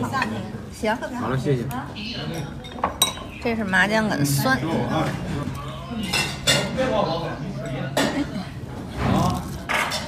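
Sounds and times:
murmur of diners' voices: 0.0 - 10.0.

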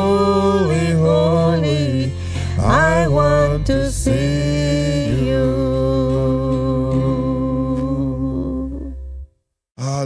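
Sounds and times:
band and singers holding chord: 0.0 - 8.7
low bass note: 2.2 - 9.3.

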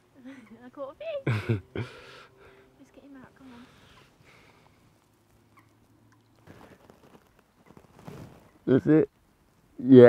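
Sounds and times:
soft rustle: 2.9 - 9.8.

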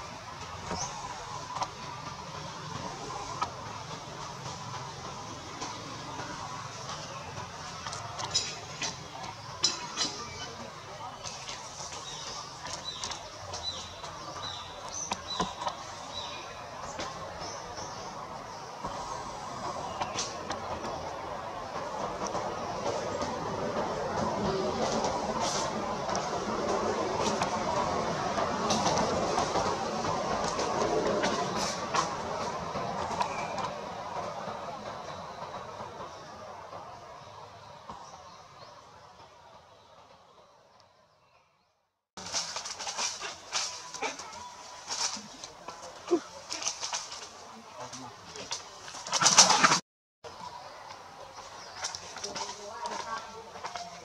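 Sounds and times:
outdoor background noise: 0.0 - 54.0.

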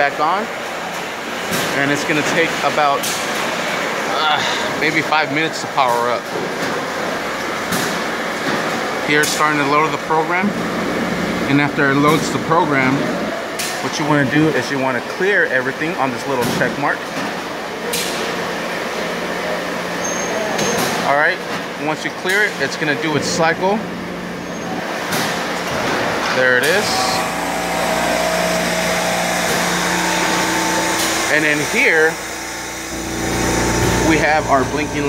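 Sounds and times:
industrial machinery humming: 0.0 - 35.0.

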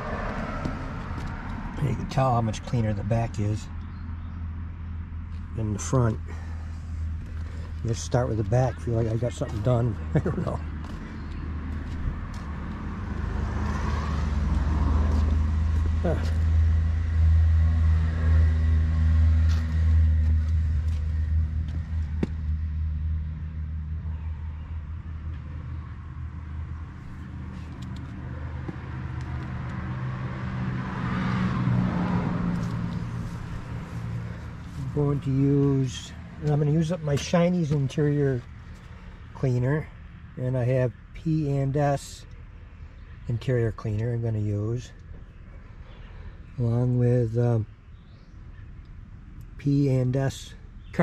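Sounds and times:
vehicles passing: 0.0 - 51.0.

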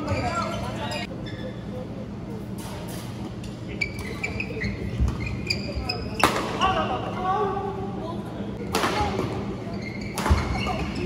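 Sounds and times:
shoe squeaks on court: 3.7 - 6.3, 9.6 - 11.0.

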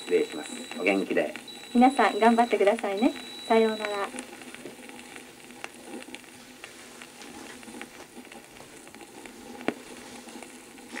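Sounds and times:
record crackles and clicks: 0.0 - 11.0
record surface hiss: 0.0 - 11.0.

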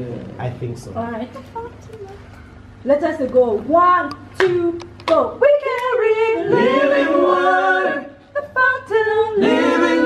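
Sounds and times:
group singing a cappella: 5.4 - 10.0.

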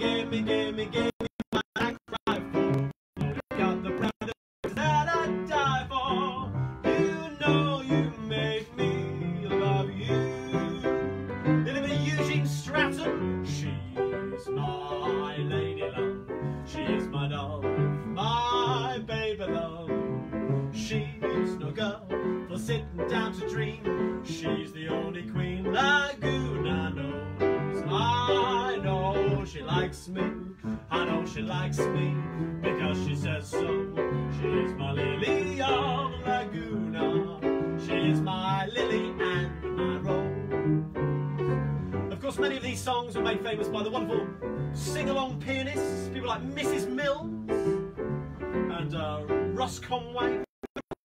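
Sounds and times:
man singing: 0.0 - 40.6, 42.1 - 47.7, 48.5 - 50.9
upright piano playing: 0.0 - 50.5.

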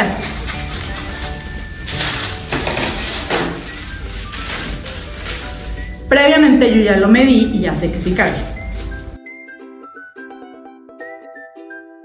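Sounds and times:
scissors cutting paper: 0.0 - 6.0
tissue paper rustling: 0.0 - 6.6, 7.4 - 9.2
background music: 0.0 - 12.0.

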